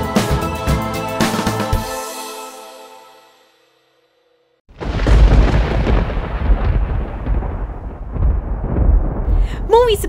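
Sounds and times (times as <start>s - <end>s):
thunder crash and rumble: 4.7s - 10.0s.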